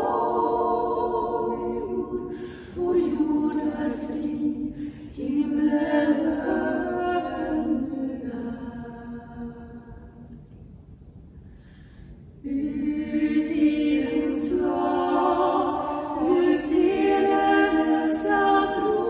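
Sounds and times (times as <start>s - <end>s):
women's a cappella choir singing: 0.0s - 10.3s, 12.4s - 19.0s.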